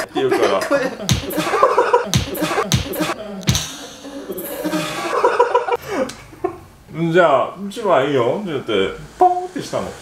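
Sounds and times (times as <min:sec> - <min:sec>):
hand slapping face: 0:01.1 - 0:03.8.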